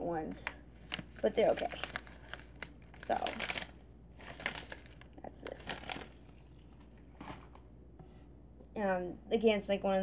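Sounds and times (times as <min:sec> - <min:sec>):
plastic pouch crinkling: 0:00.8 - 0:06.9.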